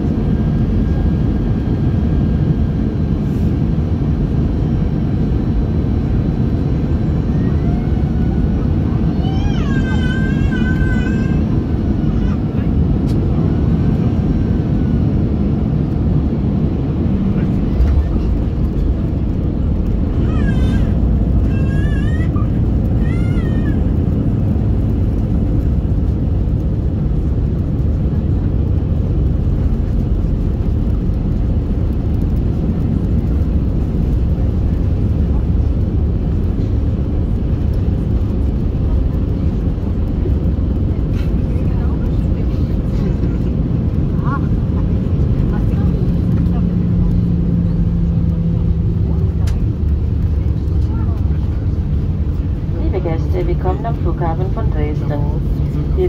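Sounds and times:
aircraft engine hum: 0.0 - 56.0
wheels rumbling on runway: 0.0 - 56.0.

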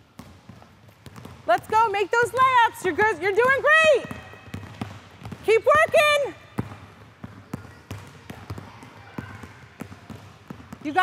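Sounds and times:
basketball bouncing on wooden floor: 0.0 - 11.0.

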